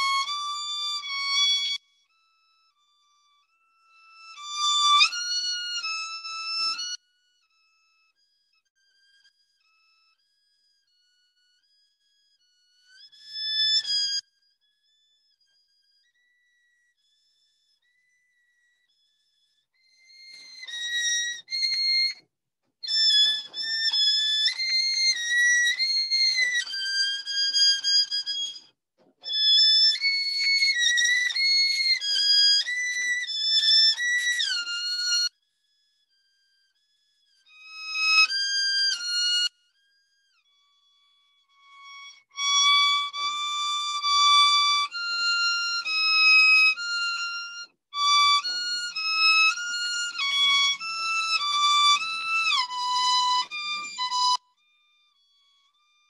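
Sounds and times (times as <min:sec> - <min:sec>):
violin playing stepwise runs: 0:20.0 - 0:22.2, 0:22.8 - 0:35.3, 0:37.3 - 0:54.5.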